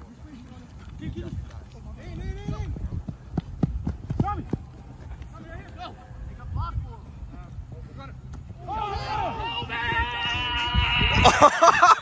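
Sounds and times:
footsteps sprinting on turf: 0.8s - 10.2s.

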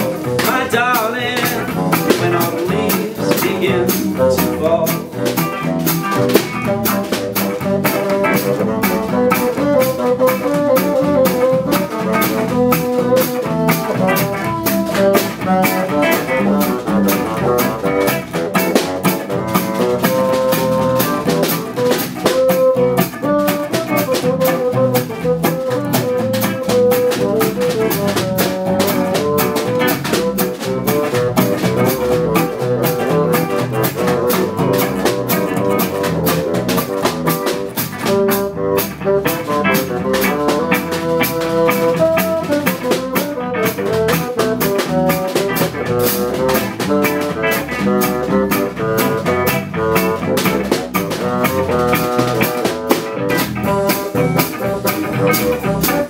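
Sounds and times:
small jazz band playing: 0.0s - 56.0s.

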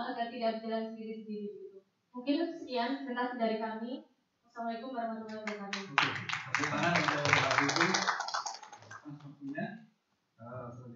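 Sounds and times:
person speaking: 5.3s - 8.2s
audience applause: 5.5s - 9.1s.

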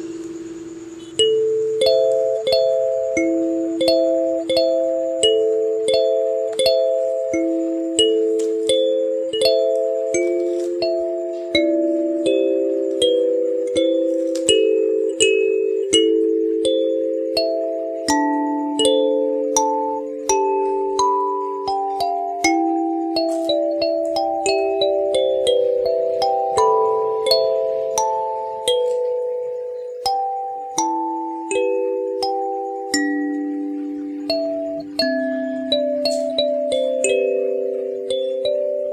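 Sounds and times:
kalimba slow melody: 0.0s - 38.9s.

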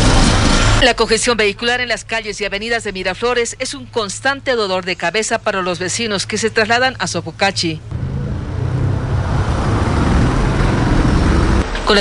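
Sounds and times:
car engines in city traffic: 6.0s - 12.0s.

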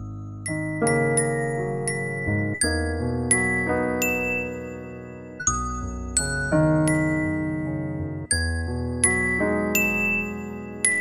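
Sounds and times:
gentle piano and bell music: 0.0s - 11.0s.

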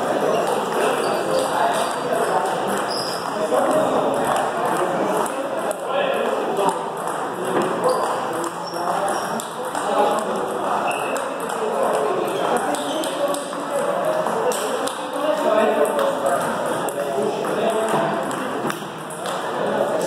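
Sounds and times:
voices chattering: 0.0s - 20.0s
table tennis ball clicking: 1.7s - 5.8s, 6.6s - 15.1s
ball bouncing on table: 6.6s - 15.2s, 15.8s - 19.4s.

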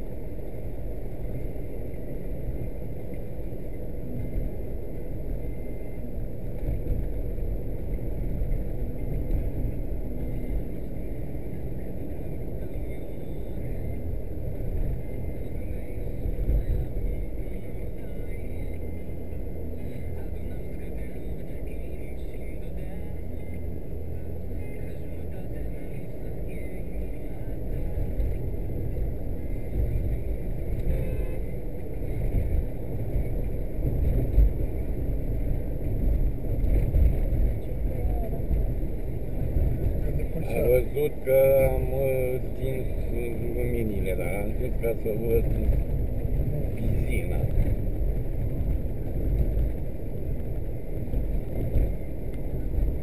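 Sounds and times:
car interior road and engine rumble: 0.0s - 53.0s.

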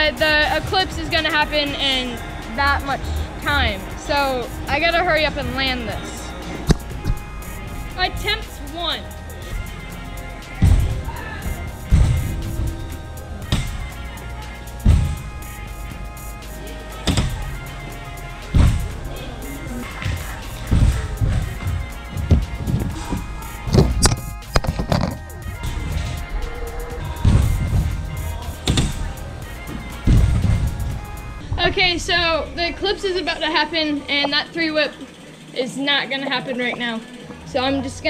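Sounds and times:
background music: 0.0s - 38.0s
wheels rolling: 0.0s - 38.0s.

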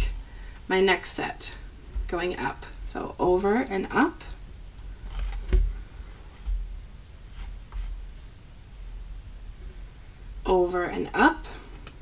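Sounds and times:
soft taps and paper rustles: 5.0s - 6.6s, 7.3s - 8.0s.

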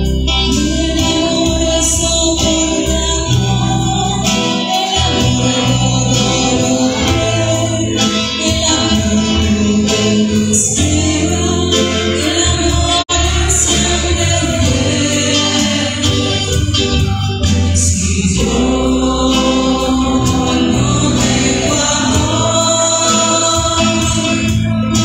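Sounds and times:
hymn singing with instruments: 0.0s - 25.0s
strong bass notes: 0.0s - 25.0s.

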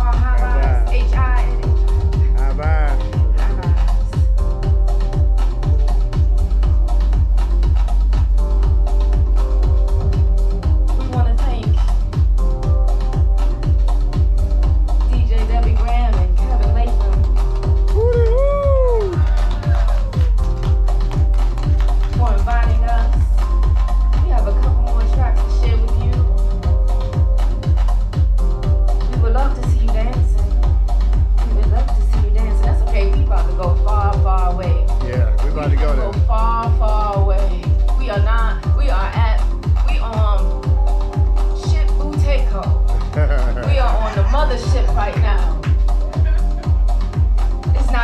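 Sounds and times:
person speaking: 0.0s - 1.3s, 34.9s - 36.7s
electronic dance music: 0.0s - 48.0s
kick drum: 0.0s - 48.0s.

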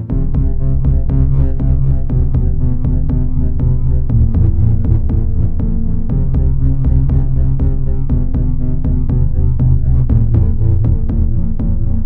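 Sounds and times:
synthesizer bassline: 0.0s - 12.0s.

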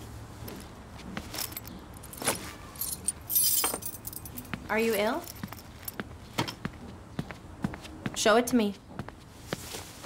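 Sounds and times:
keys jangling: 1.4s - 6.0s.

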